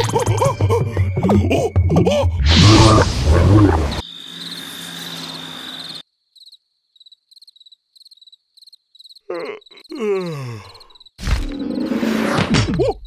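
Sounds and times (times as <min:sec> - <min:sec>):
cricket chirping: 0:04.0 - 0:11.2.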